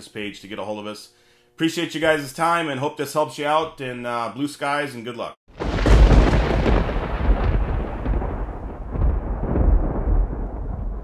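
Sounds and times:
deep thunder-like rumble: 0:05.6 - 0:11.0.

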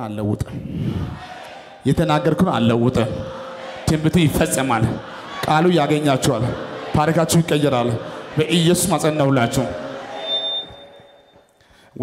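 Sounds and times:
man's amplified voice: 0:01.8 - 0:10.0.

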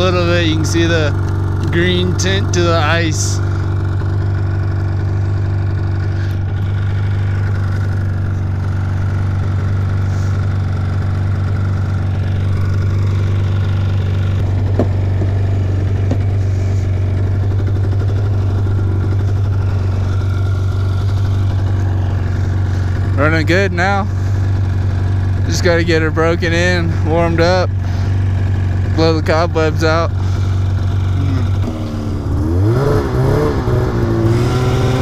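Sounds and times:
snowmobile engine idling: 0:00.0 - 0:35.0.

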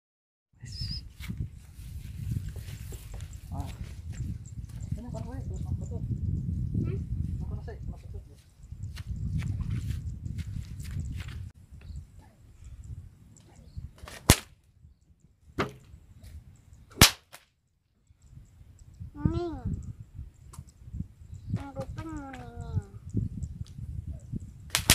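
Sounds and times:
whip cracking: 0:14.0 - 0:14.5, 0:16.9 - 0:17.5.

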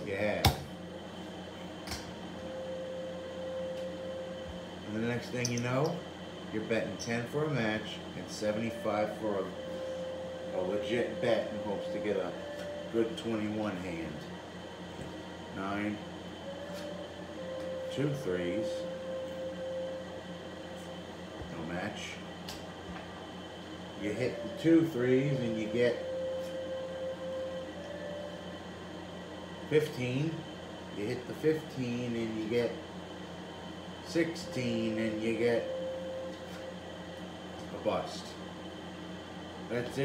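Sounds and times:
room hum: 0:00.0 - 0:40.0
faint held tone: 0:02.3 - 0:14.8, 0:15.4 - 0:22.2, 0:23.4 - 0:32.7.

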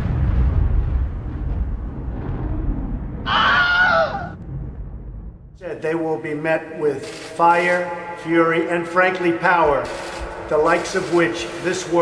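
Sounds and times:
deep low rumble: 0:00.0 - 0:03.4, 0:04.0 - 0:05.8
sudden boom: 0:00.0 - 0:05.8
shrill wavering voice-like cry: 0:03.3 - 0:04.4.

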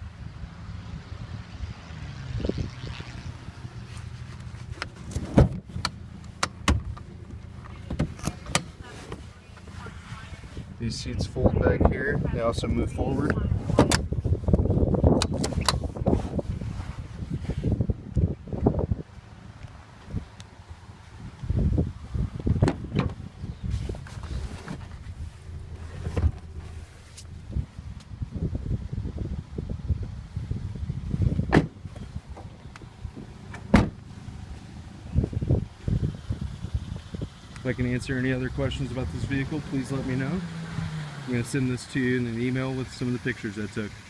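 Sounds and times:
car seat handling rumble: 0:04.4 - 0:09.6, 0:13.2 - 0:16.5, 0:22.3 - 0:28.1, 0:31.2 - 0:34.0
seat latches clicking and knocking: 0:04.8 - 0:09.2, 0:13.7 - 0:14.1, 0:15.1 - 0:16.0, 0:22.4 - 0:23.2, 0:31.4 - 0:34.0.

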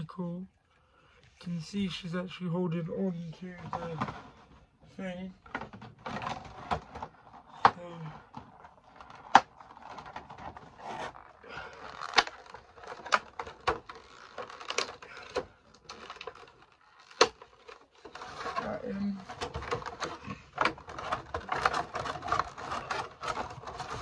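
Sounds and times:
cardboard box and plastic crinkling: 0:03.1 - 0:24.0.

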